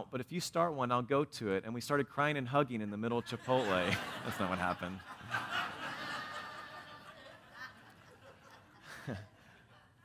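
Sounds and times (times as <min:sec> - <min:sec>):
live audience laughing: 0:03.3 - 0:10.0.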